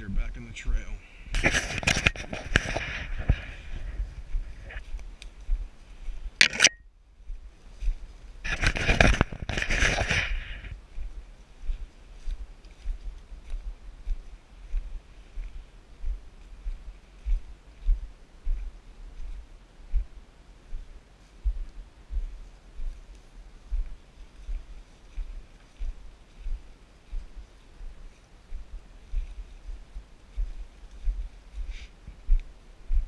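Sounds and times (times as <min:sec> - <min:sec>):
leaves rustling: 0:00.9 - 0:33.0.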